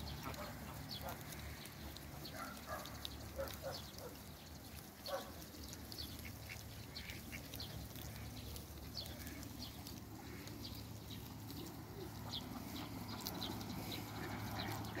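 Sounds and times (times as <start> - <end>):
duck calls: 12.2 - 15.0.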